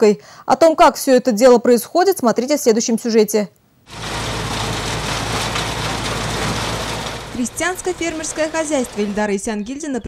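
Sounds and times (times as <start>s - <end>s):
even rushing noise: 3.9s - 9.3s
engine hum: 3.9s - 10.0s.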